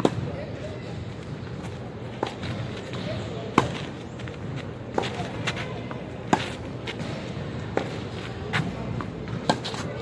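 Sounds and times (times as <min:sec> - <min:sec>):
racket hitting tennis ball: 0:00.0 - 0:00.4, 0:02.2 - 0:04.0, 0:04.9 - 0:10.0
tennis ball bouncing on clay: 0:02.2 - 0:10.0.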